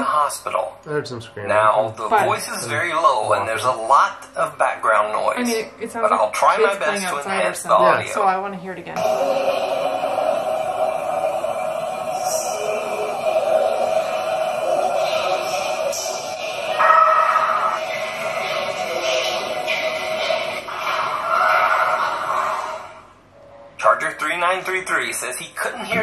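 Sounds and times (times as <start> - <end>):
steady hiss and hum: 0.0 - 26.0
scream: 9.0 - 18.2.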